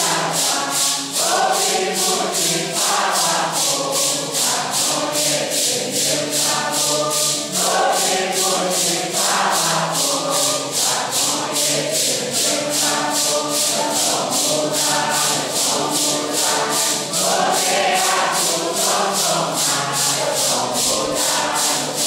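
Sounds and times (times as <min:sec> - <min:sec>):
congregation singing a hymn: 0:00.0 - 0:22.0
maracas shaken: 0:00.0 - 0:22.0.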